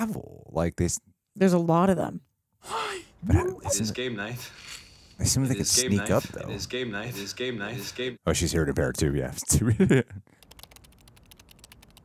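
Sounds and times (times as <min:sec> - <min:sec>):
computer keyboard typing: 0:10.4 - 0:12.0.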